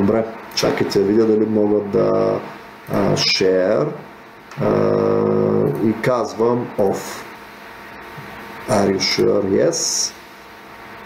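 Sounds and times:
man's drawn-out hesitation sound: 0:00.0 - 0:07.4.

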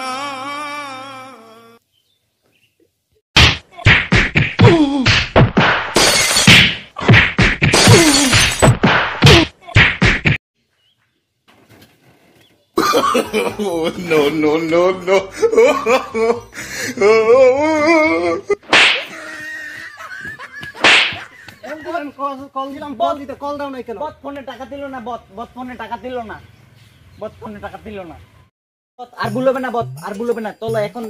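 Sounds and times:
loud whacks and crashes: 0:03.4 - 0:10.4, 0:18.6 - 0:19.2, 0:20.7 - 0:21.3
sharp whip-like cracks: 0:18.6 - 0:19.1, 0:20.8 - 0:21.3.

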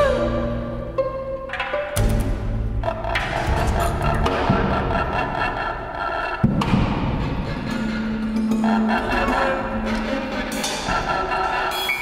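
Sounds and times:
low bass notes: 0:02.0 - 0:10.4.

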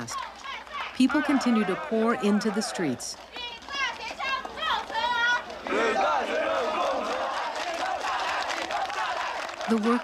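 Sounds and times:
marchers shouting: 0:00.0 - 0:10.0.

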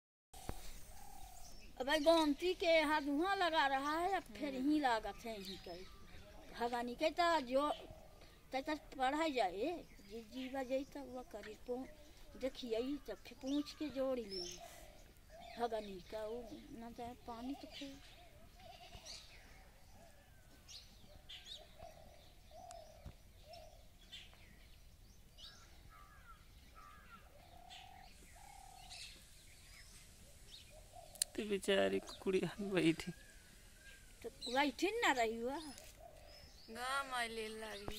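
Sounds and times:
faint bird calls: 0:00.4 - 0:02.4, 0:07.2 - 0:37.9
low animal calls: 0:18.2 - 0:23.8.

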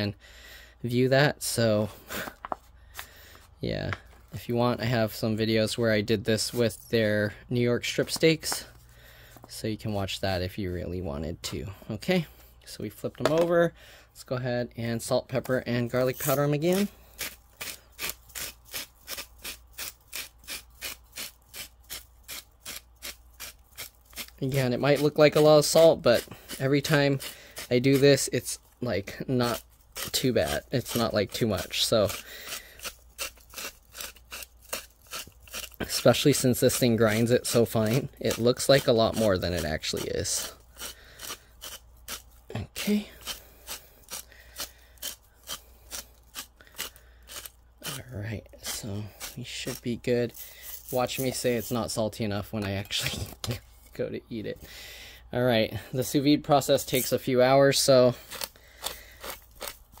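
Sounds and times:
salt grinder grinding: 0:16.0 - 0:42.4, 0:43.0 - 0:51.9, 0:58.2 - 1:00.0.

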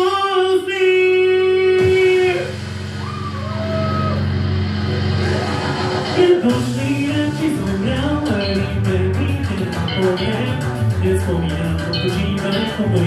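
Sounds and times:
rock backing track: 0:01.2 - 0:13.0.

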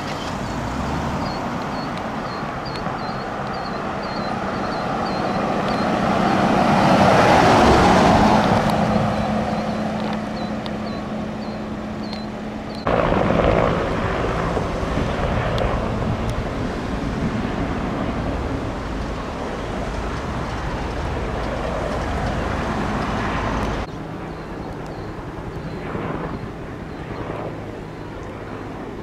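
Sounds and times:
pickup truck driving past: 0:00.0 - 0:23.9
helicopter rumble: 0:00.0 - 0:29.0.

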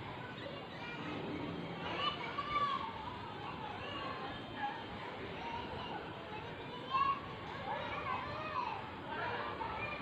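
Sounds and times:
children's voices: 0:00.1 - 0:10.0.

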